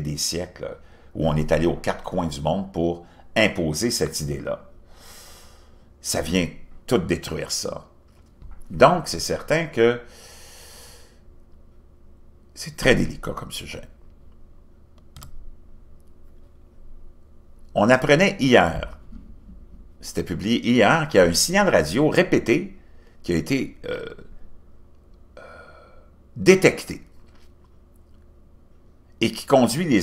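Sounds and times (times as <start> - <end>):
man speaking: 0.0 - 4.7, 6.0 - 7.9, 8.7 - 10.1, 12.6 - 14.0, 17.7 - 19.0, 20.0 - 24.3, 26.4 - 27.1, 29.2 - 30.0
low room hum: 0.0 - 30.0
man breathing in through nose: 4.8 - 5.9, 10.1 - 11.2.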